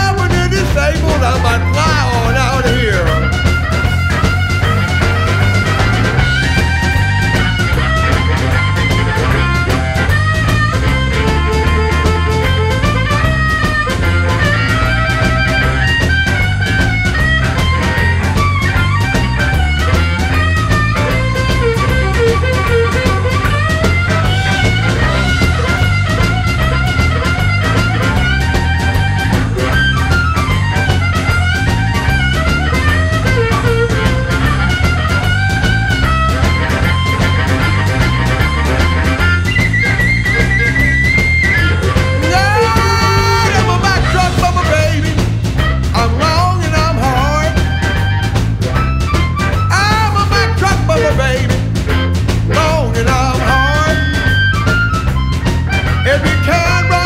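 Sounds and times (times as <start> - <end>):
bass: 0.0 - 57.0
drums with steady beat: 0.0 - 57.0
lead guitar: 0.0 - 57.0.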